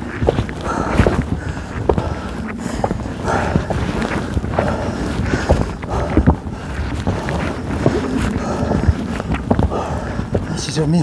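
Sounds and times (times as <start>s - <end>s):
footsteps on wooden stairs: 0.0s - 11.0s
wind rumble on microphone: 0.0s - 11.0s.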